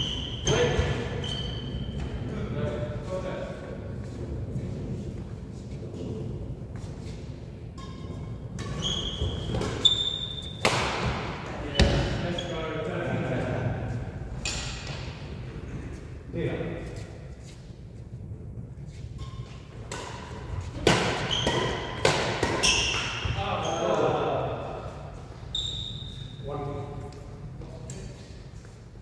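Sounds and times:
shoes squeaking on hall floor: 0.0s - 3.2s, 3.8s - 12.9s, 18.8s - 29.0s
rackets striking shuttlecock: 10.4s - 11.2s, 19.2s - 23.2s.

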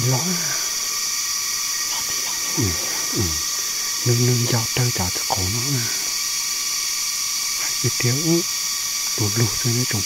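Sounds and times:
man talking: 0.0s - 0.7s, 2.0s - 6.1s, 7.6s - 8.5s, 9.2s - 10.0s
insects buzzing: 0.0s - 10.0s.

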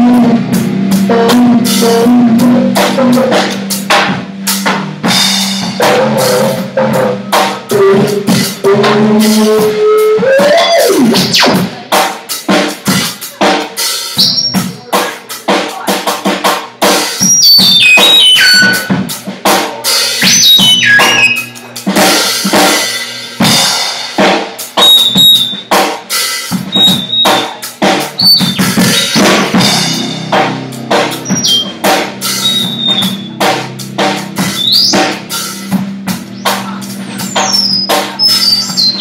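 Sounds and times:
irregular drumming: 0.0s - 39.0s.

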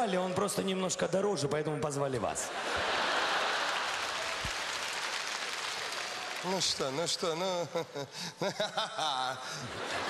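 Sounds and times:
audience applauding: 2.8s - 7.4s.

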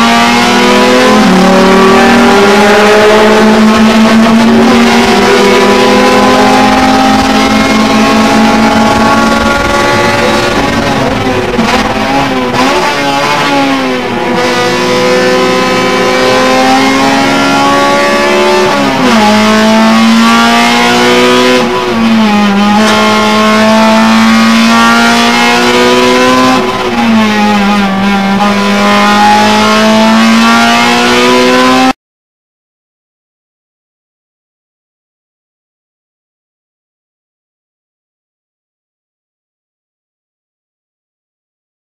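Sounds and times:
car engine at high revs: 0.0s - 32.0s.

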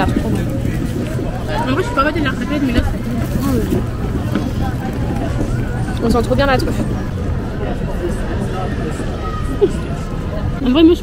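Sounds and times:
low outdoor rumble: 0.0s - 11.0s
voices talking: 0.0s - 11.0s.

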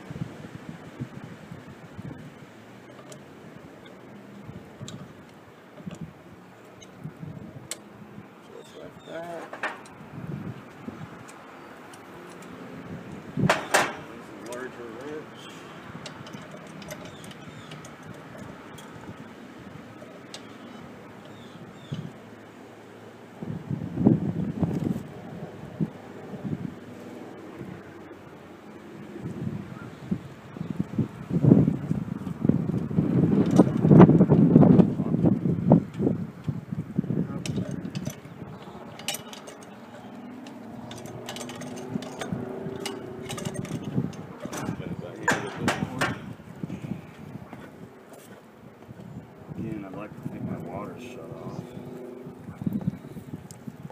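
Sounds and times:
low rumbling: 0.0s - 53.9s
pliers clicking and scraping metal: 13.5s - 19.0s, 37.4s - 46.2s.

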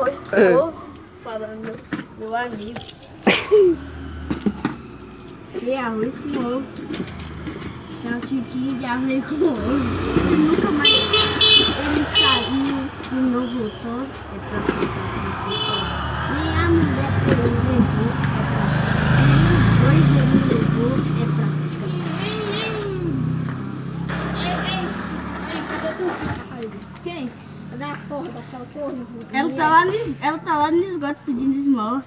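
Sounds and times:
children chattering: 0.0s - 32.0s
vehicle engine hum passing: 3.0s - 30.6s.

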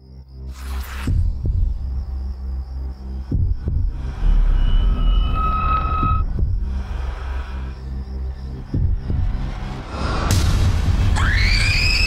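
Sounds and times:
low drone: 1.6s - 11.0s
heartbeat-like thumps: 3.3s - 4.4s, 6.0s - 7.1s, 8.6s - 9.6s
high eerie held tone: 4.2s - 6.4s.

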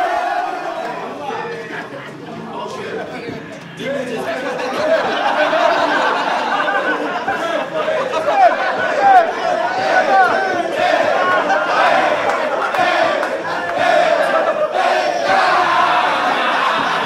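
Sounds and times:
young men whooping and cheering: 4.7s - 17.0s.

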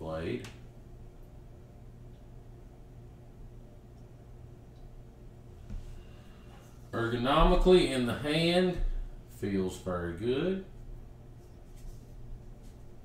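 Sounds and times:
steady low hum: 0.0s - 13.0s
faint soft sound: 10.7s - 13.0s.

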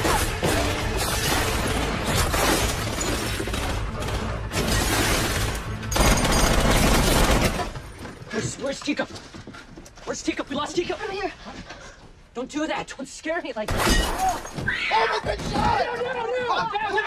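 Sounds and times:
crashing and shattering: 0.0s - 8.3s
film music: 0.0s - 8.3s.

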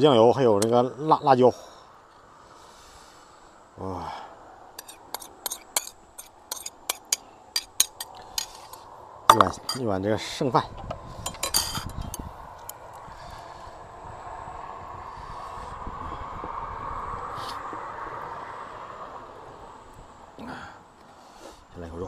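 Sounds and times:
cutlery clinking on ceramic: 4.8s - 9.8s, 11.2s - 12.2s.

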